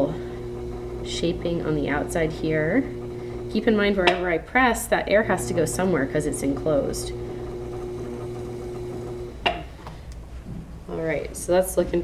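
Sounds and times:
pottery wheel motor humming: 0.0 - 9.8.

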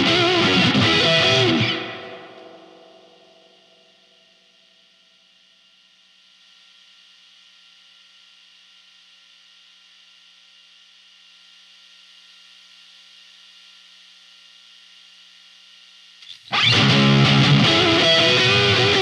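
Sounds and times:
guitar amplifier hum and hiss: 0.0 - 19.0.

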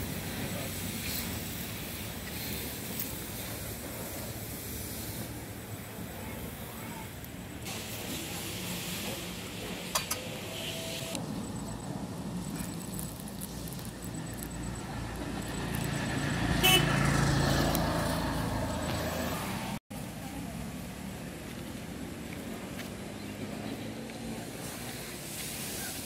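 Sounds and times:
vehicle driving past: 12.3 - 19.8.

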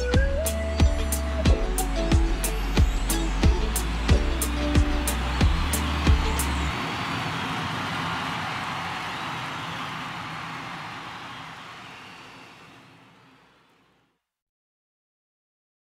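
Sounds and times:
funk band music: 0.0 - 6.7
lingering noise wash: 1.8 - 13.8.

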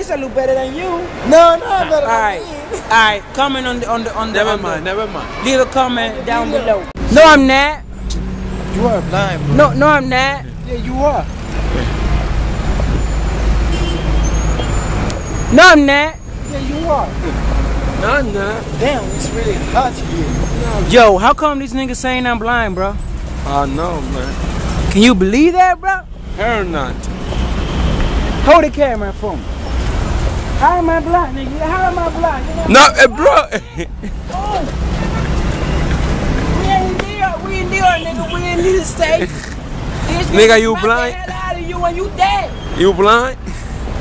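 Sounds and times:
road traffic rumble: 0.0 - 44.0.

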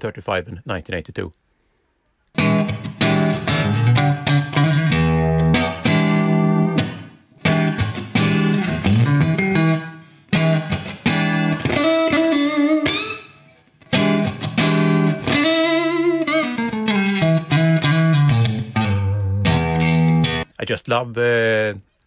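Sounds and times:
overdriven electric guitar phrases: 2.3 - 20.5.

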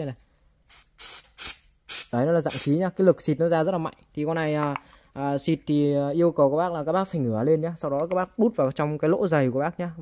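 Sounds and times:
aerosol spray can hissing: 0.7 - 2.8.

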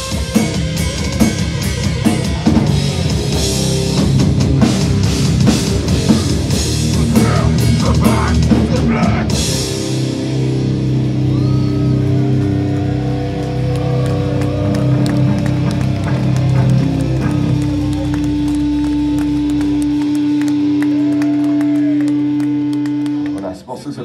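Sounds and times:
distorted electric guitars and bass: 0.0 - 24.0.

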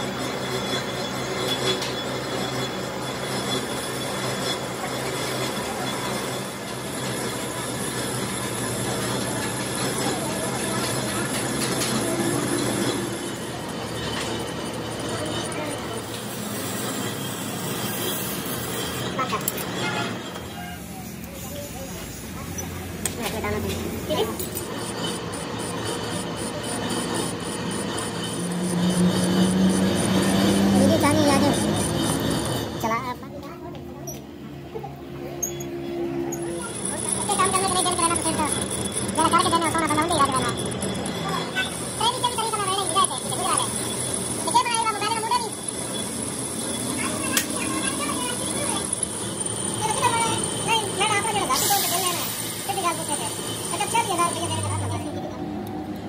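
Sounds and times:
metal lathe running: 0.0 - 33.4, 34.1 - 56.0
hand file on turning shaft: 24.2 - 32.8, 36.3 - 54.9
tool bit cutting steel: 36.3 - 54.9.

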